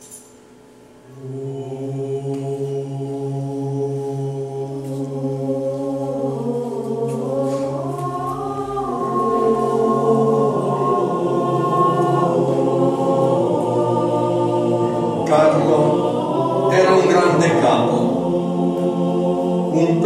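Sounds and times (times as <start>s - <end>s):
choir singing sustained chords: 0.9s - 20.0s.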